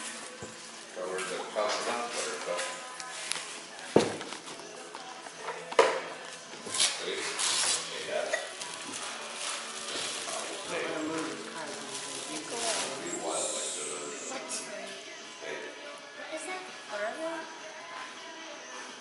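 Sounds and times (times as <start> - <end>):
voices in background: 0.1 - 19.0
paper bags rustling: 6.7 - 13.4.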